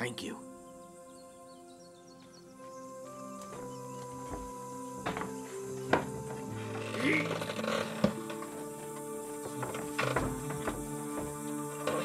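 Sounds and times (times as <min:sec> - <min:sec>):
background music: 0:00.0 - 0:12.0
wooden cart wheel creaking: 0:03.2 - 0:12.0.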